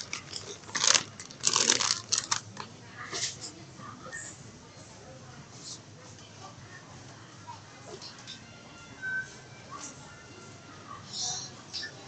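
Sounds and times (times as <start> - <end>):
plastic chip bag crinkling: 0.0 - 2.7.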